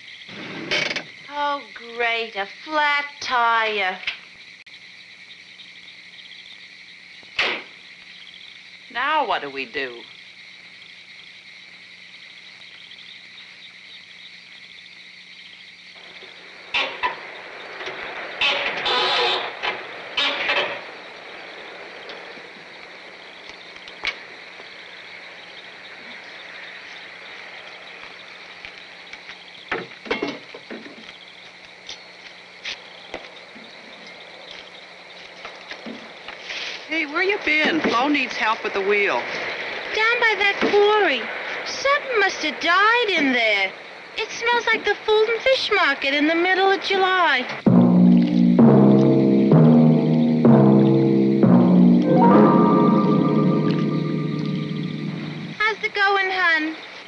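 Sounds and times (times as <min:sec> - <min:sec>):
crickets chirping: 0:00.0 - 0:57.0.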